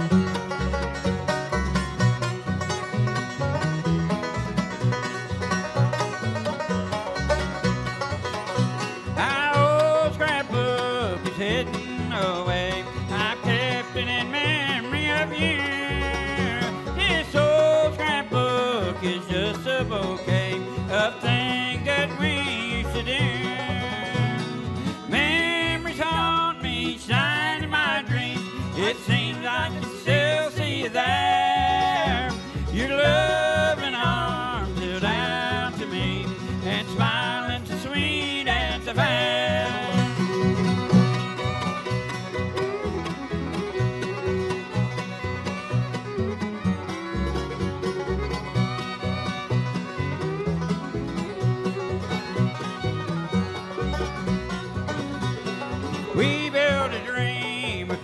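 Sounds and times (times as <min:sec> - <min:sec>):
bluegrass band playing: 0:00.0 - 0:58.0.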